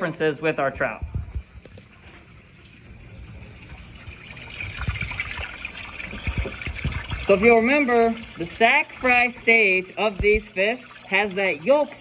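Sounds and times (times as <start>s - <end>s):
water trickling in fish tank: 1.0s - 12.0s.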